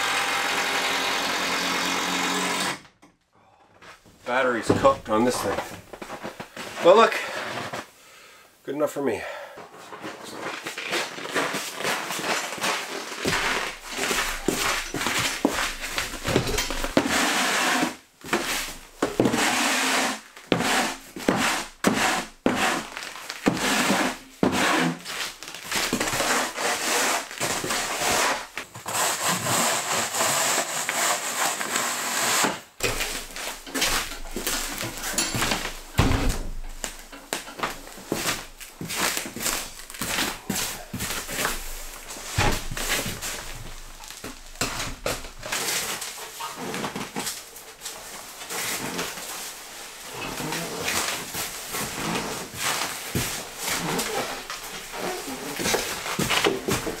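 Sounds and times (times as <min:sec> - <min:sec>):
shovel scraping plywood floor: 0:04.3 - 0:08.0, 0:09.3 - 0:57.0.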